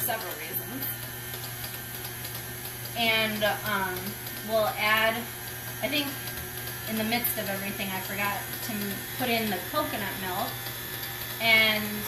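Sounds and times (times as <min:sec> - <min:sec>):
electric stand mixer humming: 0:00.0 - 0:12.0.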